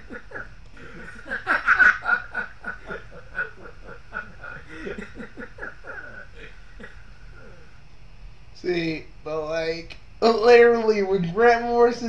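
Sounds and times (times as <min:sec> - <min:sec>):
man laughing hard: 0:00.0 - 0:07.0.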